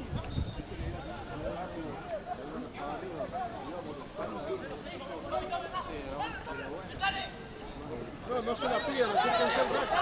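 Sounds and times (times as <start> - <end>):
voices calling and shouting: 0.0 - 10.0.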